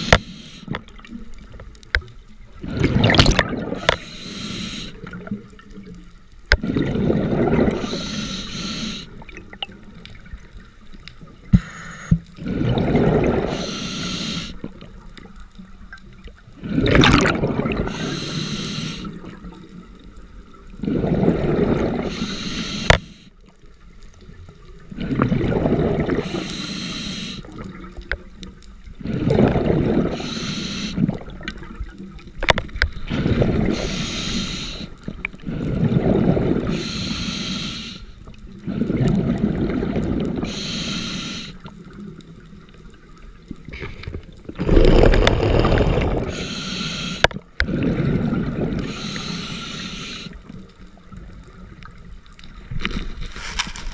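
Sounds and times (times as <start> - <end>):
scuba regulator hiss: 0.0 - 0.7, 3.9 - 5.1, 7.8 - 9.2, 13.5 - 14.6, 17.9 - 19.2, 22.0 - 23.3, 26.2 - 27.5, 30.1 - 31.0, 33.7 - 35.0, 36.7 - 38.2, 40.4 - 41.6, 45.6 - 47.3, 48.8 - 50.5
exhaled bubbles underwater: 0.0 - 11.5, 12.2 - 23.0, 23.9 - 37.2, 38.3 - 53.2.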